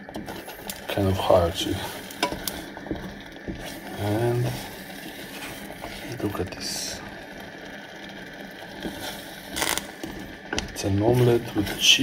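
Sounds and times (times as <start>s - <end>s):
eggs sizzling: 0.0s - 12.0s
wooden spoon stirring in saucepan: 0.0s - 12.0s
spoon knocking against pan: 2.2s - 3.6s.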